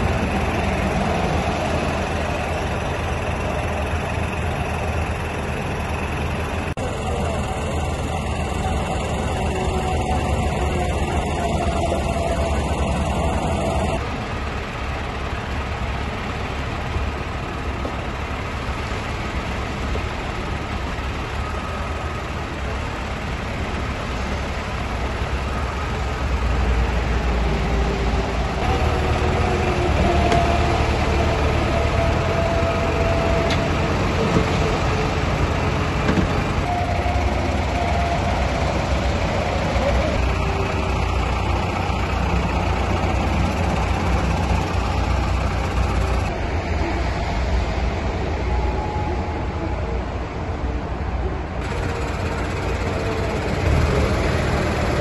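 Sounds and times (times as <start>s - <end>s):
tow truck engine running: 0.0s - 55.0s.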